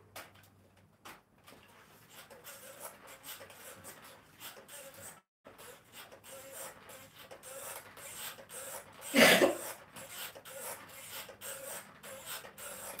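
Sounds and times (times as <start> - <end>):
stepper pedals squeaking: 2.3 - 13.0.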